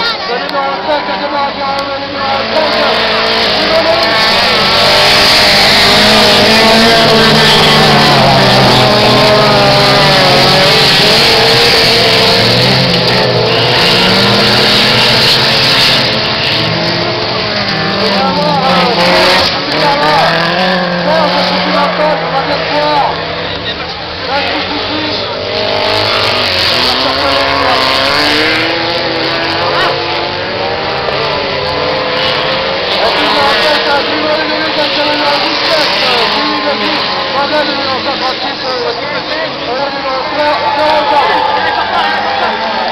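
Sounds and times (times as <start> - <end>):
racing car engines revving: 0.0 - 42.9.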